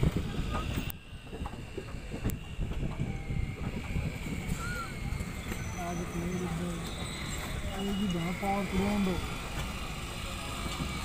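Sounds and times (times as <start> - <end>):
high-pitched whine: 0.0 - 11.0
wind buffeting microphone: 0.0 - 11.0.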